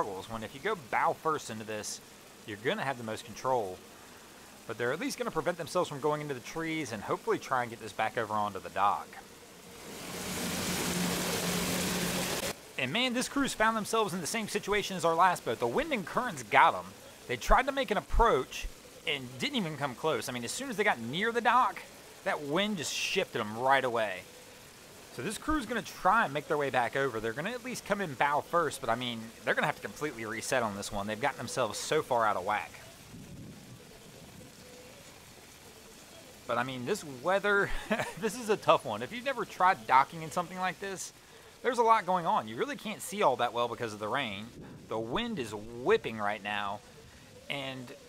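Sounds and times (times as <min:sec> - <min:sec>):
heavy rain pouring: 0:00.0 - 0:48.0
outboard motor humming: 0:09.5 - 0:12.5.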